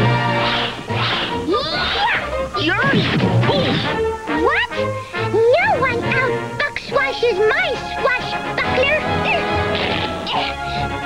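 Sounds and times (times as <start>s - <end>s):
background music: 0.0s - 11.0s
cartoon crashing and whacking: 0.1s - 4.0s, 9.7s - 10.3s.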